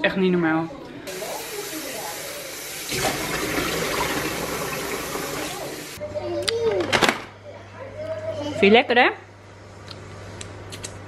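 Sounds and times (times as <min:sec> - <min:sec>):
kitchen tap running: 0:01.1 - 0:06.0.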